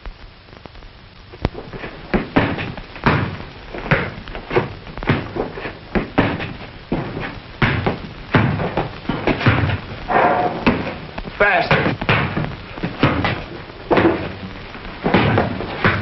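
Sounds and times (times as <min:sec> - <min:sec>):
irregular knocks and thuds: 0:01.5 - 0:16.0.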